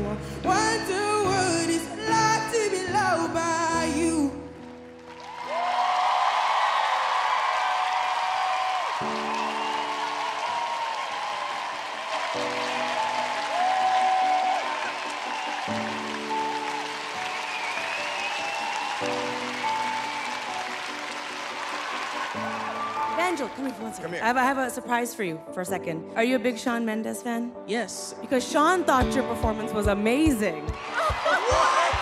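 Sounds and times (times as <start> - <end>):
audience applauding and cheering: 2.4 - 24.6, 30.3 - 32.0.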